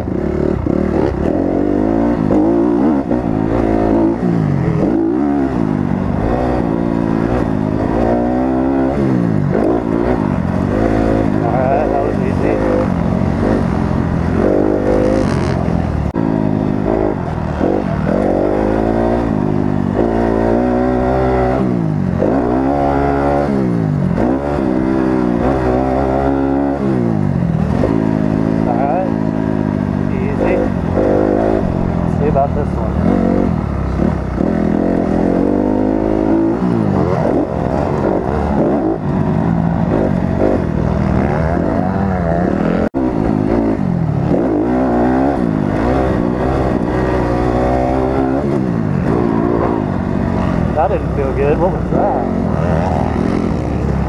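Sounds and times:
dirt bike engine revving: 0.0s - 54.0s.

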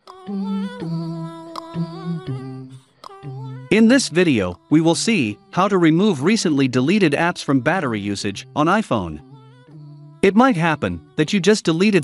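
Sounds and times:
voices humming held notes: 0.3s - 12.0s.

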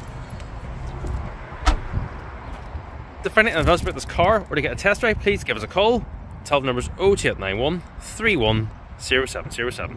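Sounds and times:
wind rumble on microphone: 0.0s - 9.9s
car door shutting: 1.6s - 2.0s.

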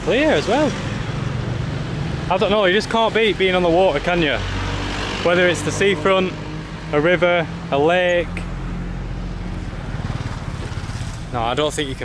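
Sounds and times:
motorbike engine passing by: 9.4s - 11.7s.

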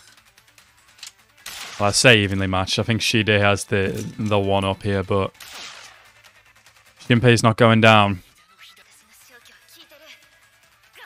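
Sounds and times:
man talking: 1.8s - 5.3s, 7.0s - 8.2s.

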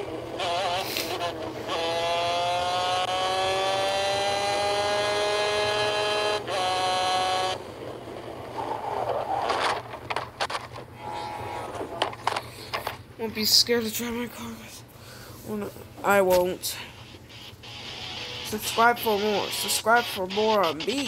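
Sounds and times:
go-kart engine at high revs: 0.0s - 7.7s, 17.7s - 21.0s
crash knocks and clatter: 9.5s - 10.9s.

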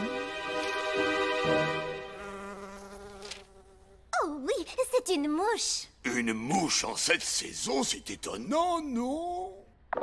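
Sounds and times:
fly buzzing: 0.6s - 4.2s.

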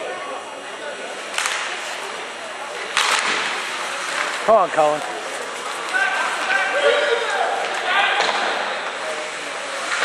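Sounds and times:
faint voices: 0.0s - 10.0s
murmur of spectators: 0.0s - 10.0s
skate blades scraping ice: 1.2s - 7.9s.

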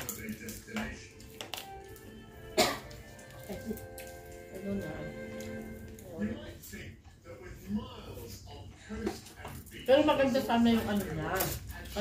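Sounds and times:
background music: 0.0s - 6.5s
person coughing: 2.5s - 3.0s.

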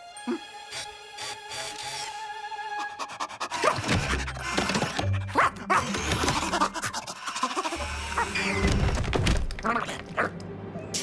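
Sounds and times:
background music: 0.0s - 11.0s
dog panting: 2.8s - 5.8s.

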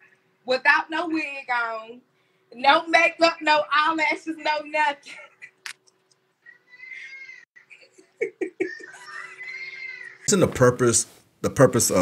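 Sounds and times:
child wailing over phone: 8.8s - 10.3s.

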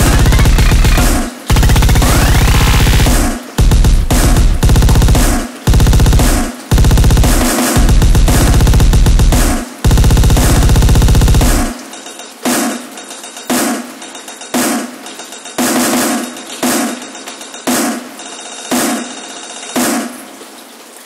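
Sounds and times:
bass-heavy breakcore music: 0.0s - 11.8s
electronic drum hits: 0.0s - 11.8s, 17.7s - 19.2s, 19.8s - 20.2s.

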